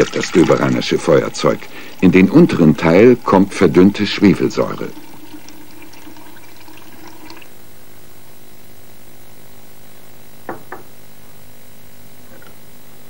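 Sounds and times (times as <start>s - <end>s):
liquid trickling into glass cylinder: 0.0s - 7.5s
bottle knocking on bench: 10.5s - 10.9s.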